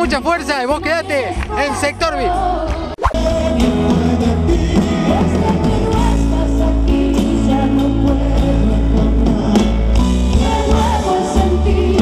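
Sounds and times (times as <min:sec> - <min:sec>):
live band music: 0:00.0 - 0:12.0
acoustic guitars: 0:02.8 - 0:12.0.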